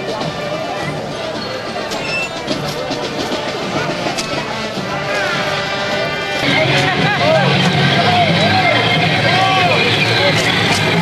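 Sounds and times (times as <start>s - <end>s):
street crowd noise: 0.0s - 11.0s
voices shouting and whooping: 6.4s - 11.0s.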